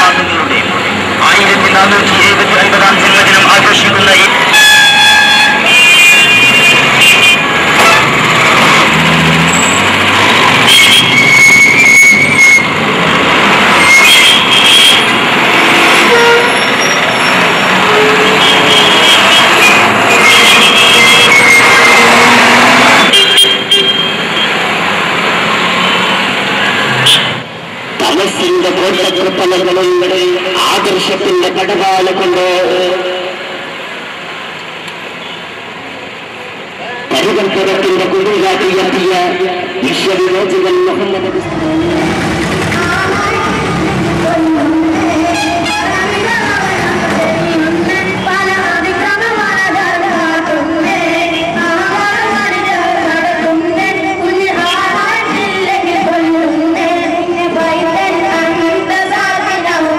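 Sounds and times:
rumble of passing vehicles: 0:00.0 - 0:59.9
vehicle horns: 0:04.4 - 0:08.2, 0:10.6 - 0:12.8, 0:13.7 - 0:24.6, 0:25.8 - 0:27.5, 0:35.2 - 0:35.5, 0:45.2 - 0:46.0
voices: 0:36.4 - 0:59.9.

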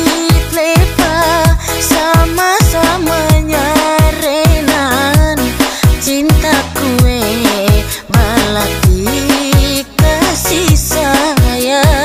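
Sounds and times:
deep electronic kick drum: 0:00.0 - 0:12.0
electronic backing track: 0:00.0 - 0:12.0
woman singing pop song: 0:00.0 - 0:12.0.

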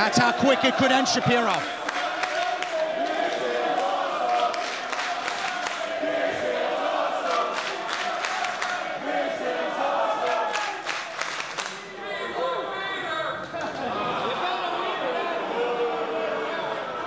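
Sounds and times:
crowd chanting in unison: 0:00.0 - 0:11.2, 0:13.8 - 0:17.0
hand claps: 0:01.5 - 0:05.9, 0:07.2 - 0:08.8, 0:10.2 - 0:11.8.

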